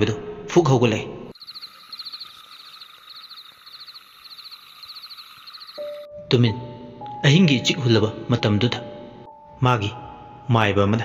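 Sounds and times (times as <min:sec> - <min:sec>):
insects chirping in rapid trills: 0:01.3 - 0:06.1
faint steady high hiss: 0:01.4 - 0:06.0.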